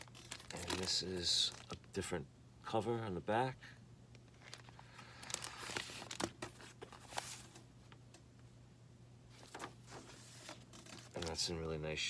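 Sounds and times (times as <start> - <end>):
shrink-wrap and paper crinkling: 0.0 - 2.0, 4.1 - 7.6, 9.4 - 11.5.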